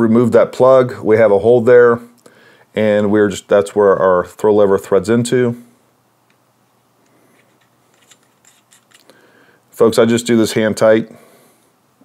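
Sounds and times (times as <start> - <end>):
metal part clicking and scraping: 7.3 - 9.1.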